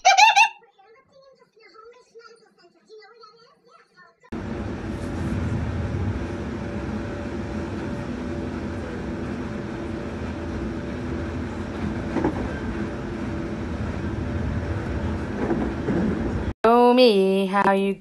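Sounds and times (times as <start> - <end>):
even hum: 4.3 - 17.2
train rumble inside carriage: 4.4 - 16.6.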